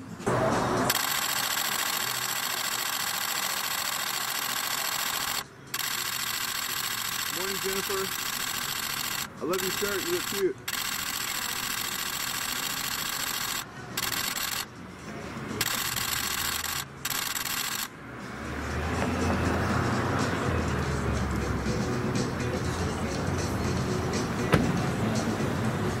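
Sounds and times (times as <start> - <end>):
car door shutting: 24.5 - 24.8.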